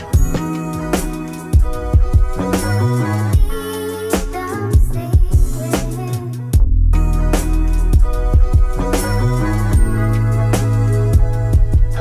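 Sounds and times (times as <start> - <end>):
slow hip hop beat: 0.0 - 12.0.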